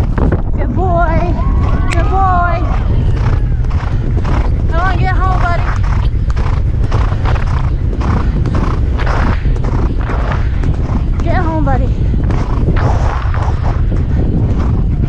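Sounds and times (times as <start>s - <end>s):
wind rumble on microphone: 0.0s - 15.0s
horse hoofbeats galloping on turf: 1.4s - 15.0s.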